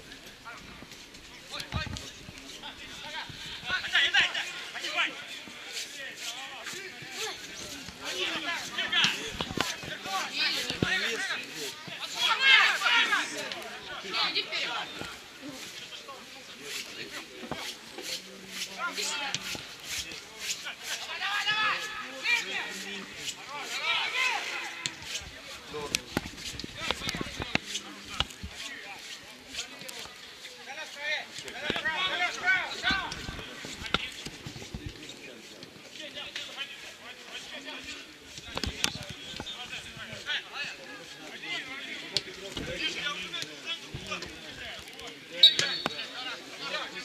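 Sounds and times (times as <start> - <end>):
footballers shouting: 12.1 - 15.0.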